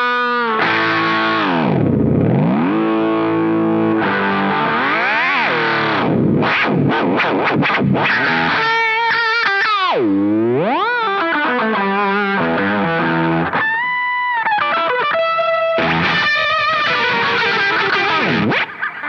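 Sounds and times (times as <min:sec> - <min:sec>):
distorted electric guitar with delay: 0:00.0 - 0:19.0.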